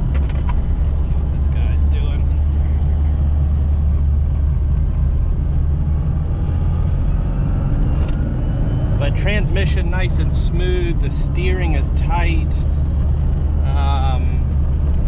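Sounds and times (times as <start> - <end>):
car engine droning: 0.0 - 15.0
road and tyre noise: 0.0 - 15.0.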